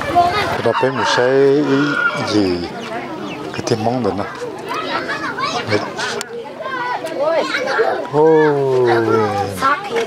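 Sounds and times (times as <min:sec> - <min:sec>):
people talking: 0:00.0 - 0:10.0
rooster crowing: 0:00.6 - 0:02.5.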